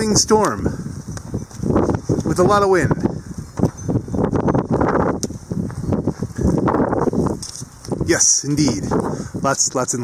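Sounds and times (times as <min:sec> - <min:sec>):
storm wind buffeting microphone: 0:00.0 - 0:10.0.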